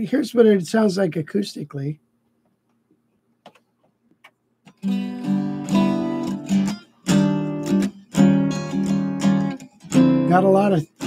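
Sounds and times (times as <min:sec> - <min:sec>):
strummed guitar chord: 0:04.8 - 0:11.0.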